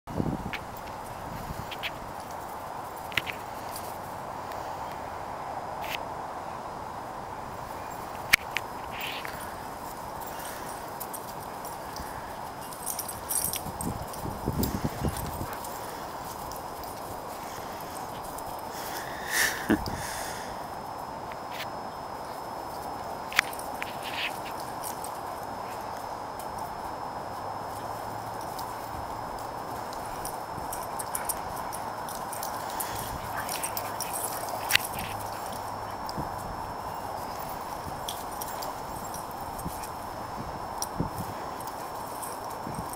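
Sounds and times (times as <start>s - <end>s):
background hiss: 0.1s - 42.9s
dog paws pattering on dry leaves: 7.6s - 20.4s, 21.4s - 42.9s.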